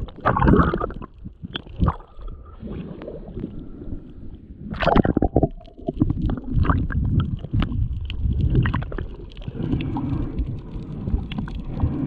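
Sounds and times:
bubbling: 0:00.0 - 0:12.0
muffled underwater rumble: 0:00.0 - 0:12.0
small crackling clicks: 0:05.4 - 0:12.0.

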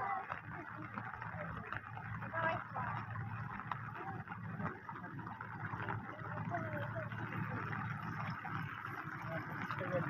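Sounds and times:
rain pattering: 0:00.0 - 0:10.0
water running in a channel: 0:00.0 - 0:10.0.

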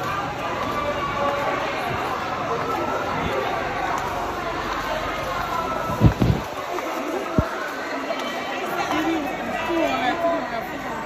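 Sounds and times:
market crowd chatter: 0:00.0 - 0:11.0.

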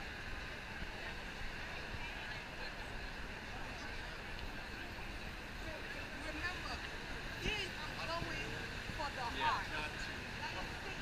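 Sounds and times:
traffic hum: 0:00.0 - 0:11.0
voices of passers-by: 0:00.0 - 0:11.0.

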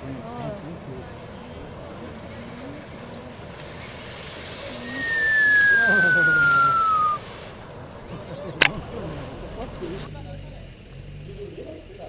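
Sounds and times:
loud rushing hiss: 0:00.0 - 0:10.0
high whistle sliding down: 0:04.8 - 0:07.2
laughter: 0:05.3 - 0:07.2, 0:08.1 - 0:08.9.

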